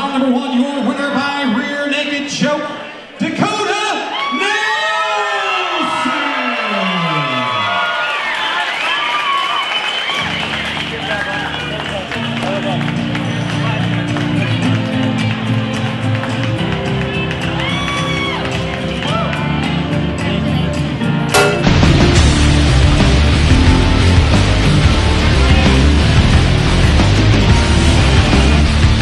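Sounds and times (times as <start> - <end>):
loud music with heavy bass: 19.2 - 29.0.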